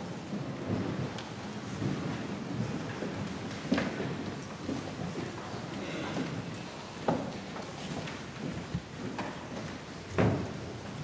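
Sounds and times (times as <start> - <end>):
people shuffling and rustling: 0.0 - 11.0.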